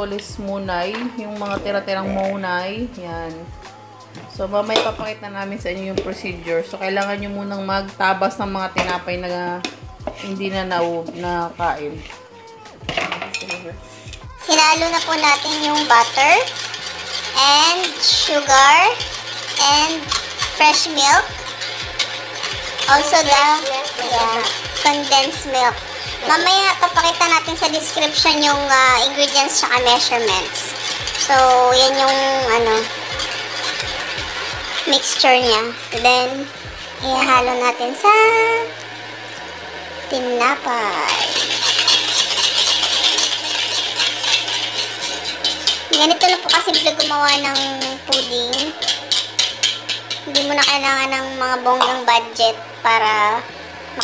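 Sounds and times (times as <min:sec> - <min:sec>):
woman's drawn-out spoken syllable: 0:02.0 - 0:02.5
bowl and pot clattering: 0:12.8 - 0:13.7, 0:14.4 - 0:36.3, 0:41.1 - 0:52.1.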